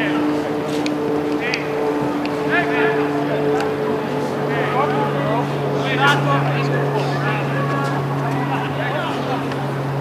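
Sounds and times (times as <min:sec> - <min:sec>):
low mechanical hum: 0:00.0 - 0:10.0
players shouting: 0:00.0 - 0:10.0.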